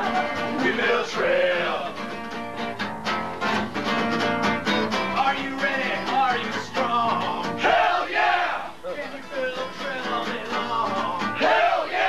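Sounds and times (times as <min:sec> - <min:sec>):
guitar music: 0:00.0 - 0:07.9, 0:08.7 - 0:11.6
group of voices shouting: 0:07.6 - 0:08.8, 0:11.4 - 0:12.0.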